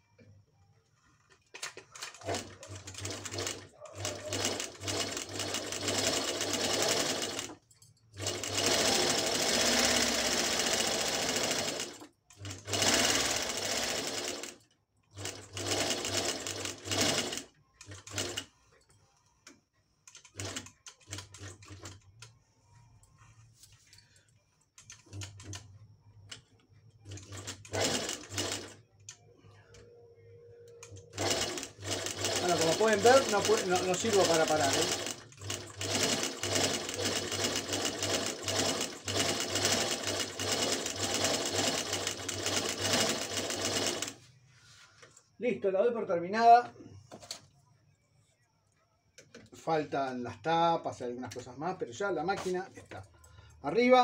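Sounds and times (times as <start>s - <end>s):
sewing machine stitching: 1.6s - 18.6s, 27.0s - 28.8s, 30.8s - 44.2s.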